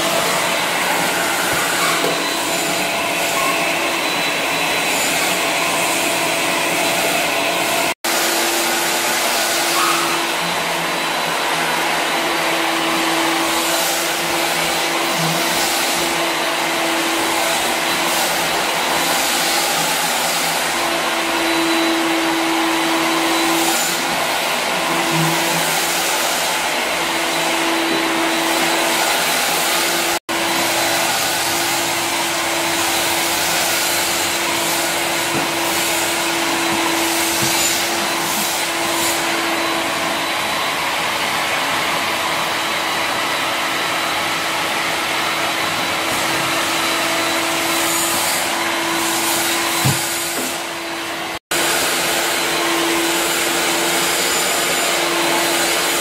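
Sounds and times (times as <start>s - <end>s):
vacuum cleaner running: 0.0s - 56.0s.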